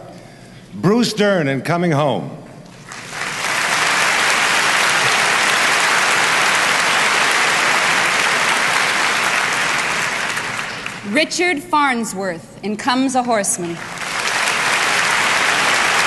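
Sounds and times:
large audience applauding: 0:02.7 - 0:11.2, 0:13.6 - 0:16.0.

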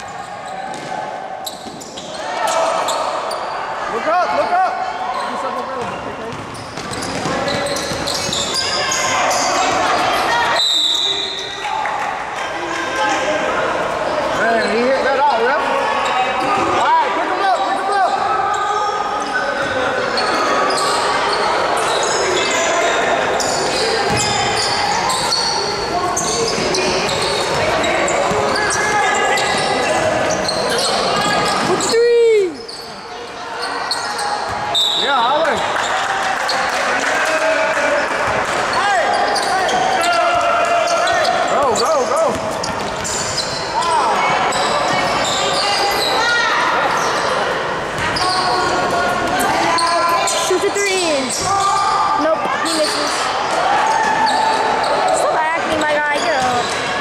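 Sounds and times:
basketball bouncing on court: 0:00.6 - 0:02.1, 0:05.8 - 0:08.6, 0:24.0 - 0:25.4, 0:26.1 - 0:31.9, 0:42.1 - 0:43.6
overlapping voices: 0:35.4 - 0:39.1.

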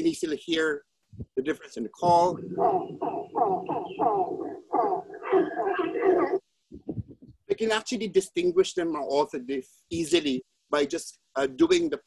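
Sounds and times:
hornbill calls: 0:02.2 - 0:06.4.

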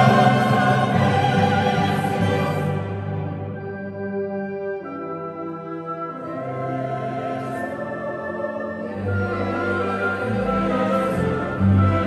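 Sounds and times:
orchestra sustained chords: 0:00.0 - 0:12.0.

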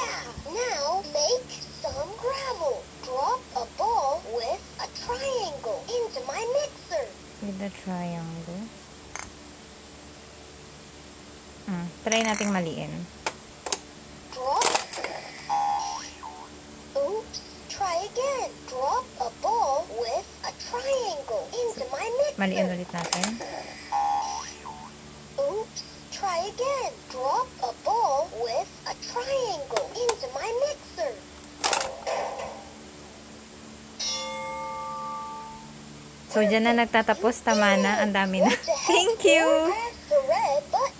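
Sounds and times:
plastic ball dropping into toy: 0:23.0 - 0:23.4, 0:31.6 - 0:32.5
toy clicks: 0:23.0 - 0:23.5
toy electronic chime: 0:34.0 - 0:35.7.

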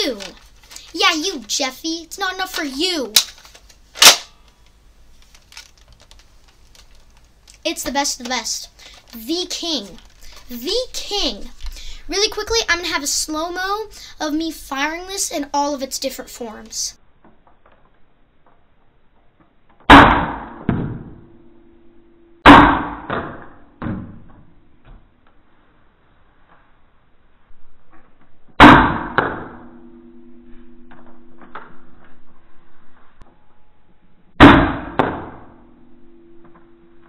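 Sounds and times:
low steady hum: 0:00.0 - 0:13.0, 0:21.0 - 0:22.5, 0:24.5 - 0:37.0
toy blaster shot snapping: 0:02.5 - 0:04.4.

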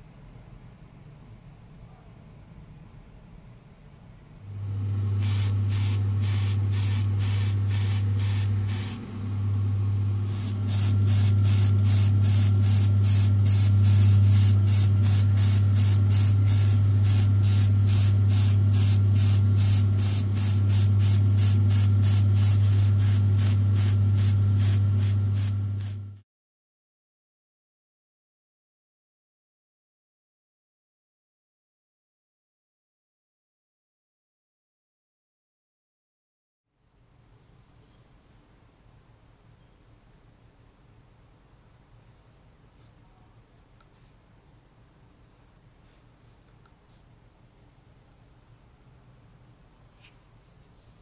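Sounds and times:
low motor hum: 0:04.4 - 0:26.2
spray paint hissing bursts: 0:05.2 - 0:09.0, 0:10.2 - 0:26.1.

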